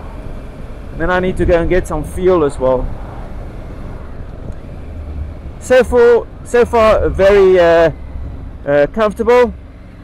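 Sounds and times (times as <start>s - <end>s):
motorcycle engine drone: 0.0s - 10.0s
road noise: 0.0s - 10.0s.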